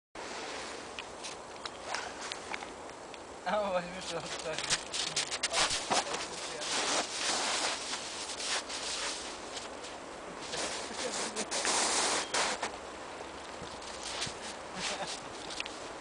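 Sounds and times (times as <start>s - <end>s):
snow crunching: 4.0s - 12.8s, 13.6s - 16.0s.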